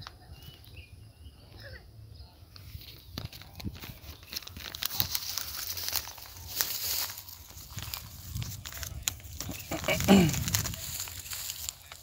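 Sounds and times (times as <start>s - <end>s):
crinkling and rustling: 2.6s - 12.0s.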